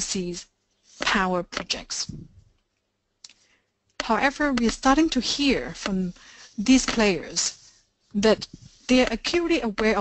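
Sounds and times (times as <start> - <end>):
person speaking: 0.0 - 2.6, 4.0 - 10.0.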